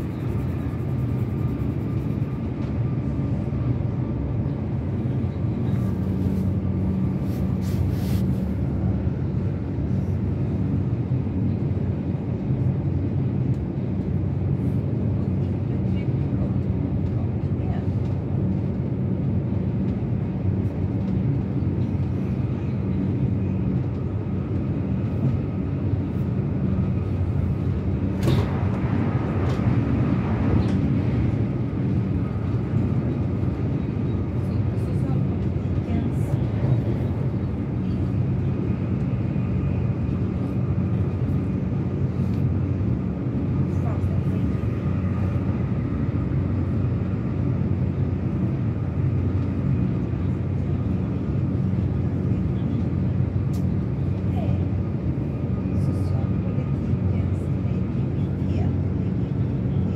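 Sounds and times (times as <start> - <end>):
train wheels rumbling on rails: 0.0 - 47.6.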